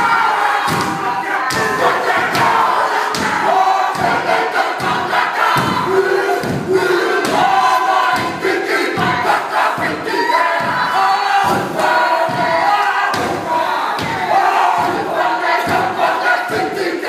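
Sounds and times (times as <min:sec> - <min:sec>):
men chanting in unison: 0:00.0 - 0:17.0
stamping and slapping thuds: 0:00.7 - 0:08.4, 0:10.6 - 0:15.9.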